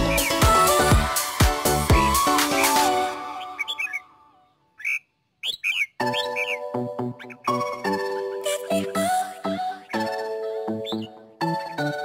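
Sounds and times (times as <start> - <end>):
bird chirps: 0.0 - 0.8, 2.3 - 12.0
background music: 0.0 - 4.6, 6.0 - 12.0.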